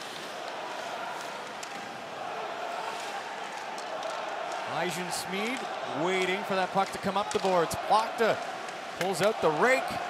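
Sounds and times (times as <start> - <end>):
hockey sticks and puck clicking: 0.0 - 10.0.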